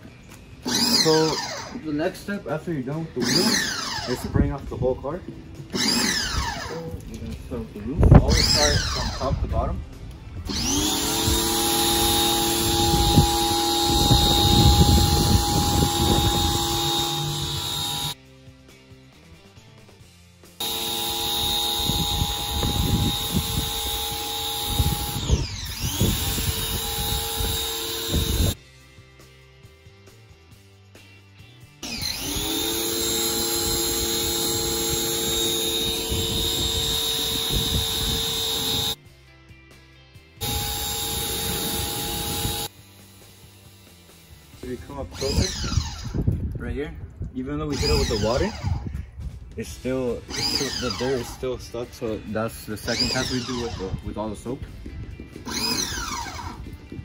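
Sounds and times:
pressure washer motor whine: 10.5s - 18.2s, 20.6s - 28.6s, 31.8s - 39.0s, 40.4s - 43.8s, 55.5s - 56.6s.

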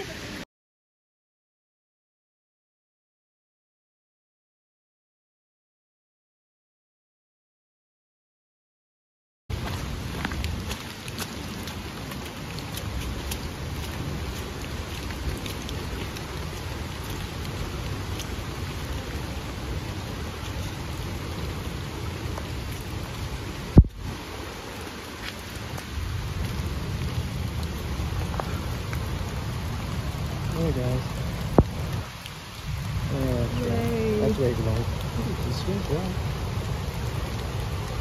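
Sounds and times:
rain on leaves: 0.0s - 0.4s, 9.5s - 38.0s.

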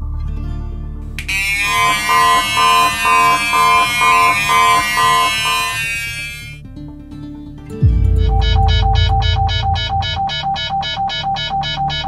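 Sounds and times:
background music: 0.0s - 12.0s
gas detector alarm beeping: 1.2s - 6.6s, 7.9s - 12.0s.

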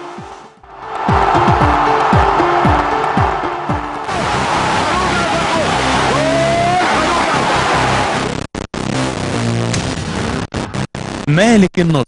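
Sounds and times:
electronic ident music: 0.2s - 10.1s.

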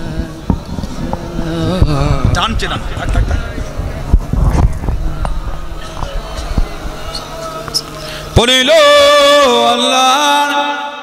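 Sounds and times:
faint voices: 0.0s - 8.6s
low hum: 0.0s - 9.4s.

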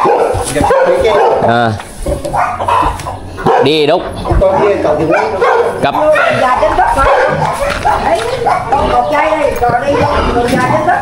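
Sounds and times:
animal calling: 0.0s - 11.0s
people talking: 3.5s - 11.0s.

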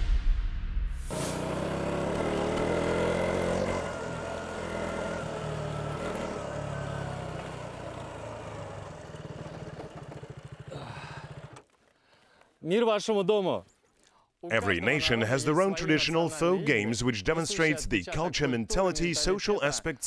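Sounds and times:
motorcycle engine running: 1.1s - 11.9s.

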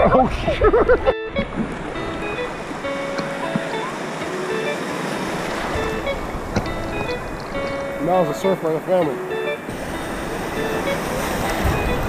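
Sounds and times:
ocean surf washing: 0.0s - 12.0s.

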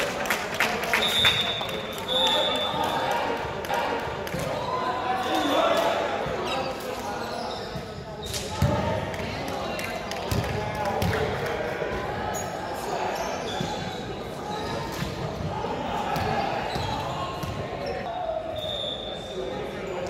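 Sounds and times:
indistinct chatter of voices: 0.0s - 20.0s.

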